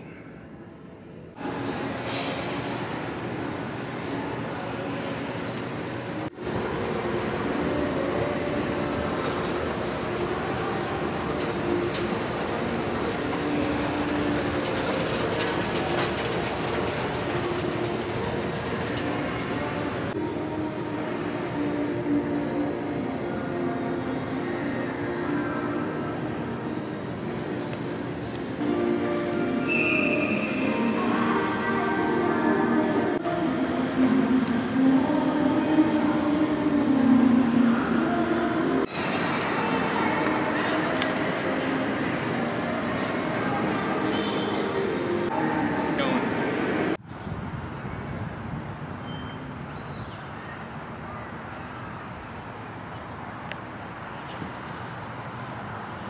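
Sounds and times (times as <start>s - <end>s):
mall concourse ambience: 0.0s - 56.0s
escalator mechanical drone: 1.4s - 28.7s
background music: 6.4s - 47.0s.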